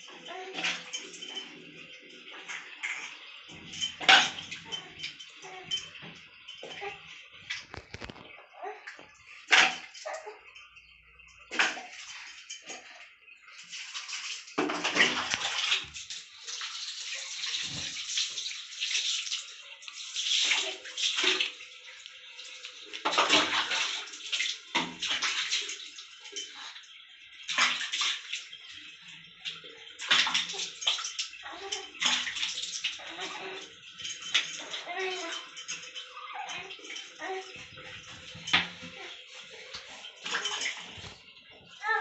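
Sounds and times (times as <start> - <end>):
water splashing: 11.4 - 42.0.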